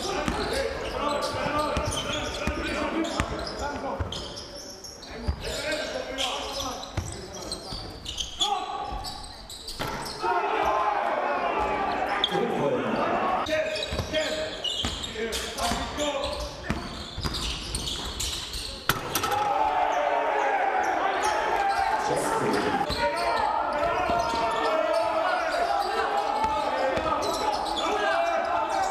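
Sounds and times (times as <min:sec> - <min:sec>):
players calling out: 0:00.0 - 0:17.2, 0:18.5 - 0:28.9.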